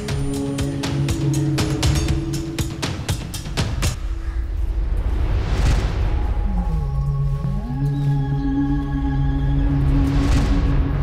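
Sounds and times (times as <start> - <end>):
sustained synthesizer tones: 4.1 - 11.0.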